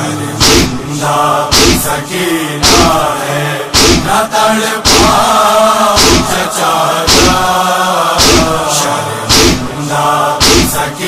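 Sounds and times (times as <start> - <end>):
chorus of voices reciting: 0.0 - 11.0
sharp chest-beating claps: 6.0 - 6.4, 8.2 - 8.6, 10.4 - 10.8.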